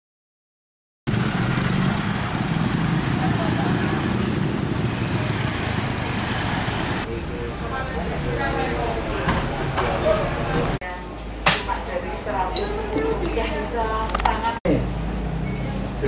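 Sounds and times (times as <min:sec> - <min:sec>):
roadside traffic rumble: 0:01.1 - 0:16.0.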